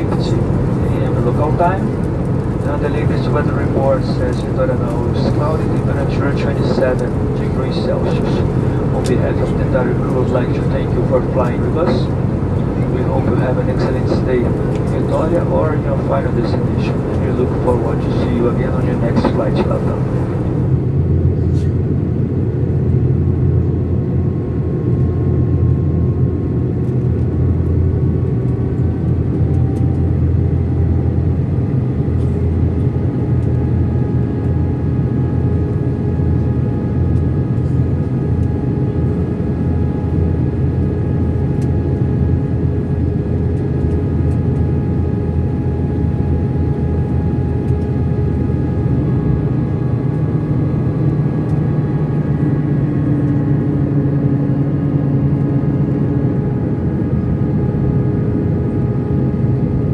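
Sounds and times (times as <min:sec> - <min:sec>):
airplane cabin engine drone: 0:00.0 - 0:59.9
faint engine tones: 0:00.0 - 0:59.9
low engine tone: 0:00.0 - 0:59.9.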